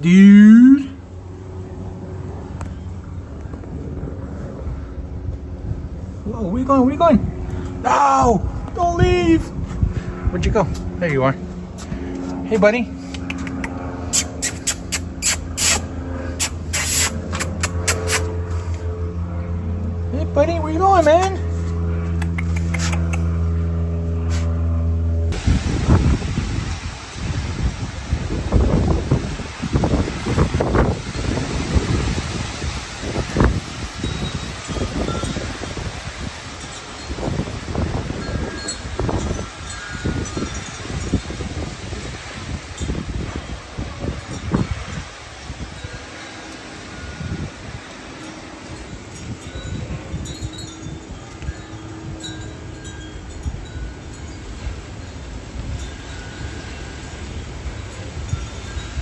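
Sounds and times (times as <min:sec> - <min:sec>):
wind gusting across microphone: 0:01.0 - 0:59.0
wind chimes ringing: 0:32.7 - 0:59.0.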